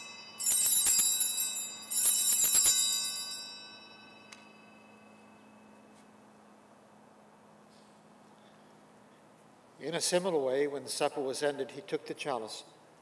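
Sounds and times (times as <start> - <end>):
small altar bells jangling: 0.0 - 6.0.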